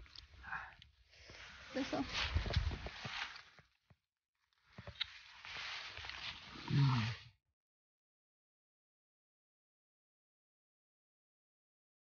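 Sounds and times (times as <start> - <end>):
rustling leaves handling noise: 5.0 - 7.2.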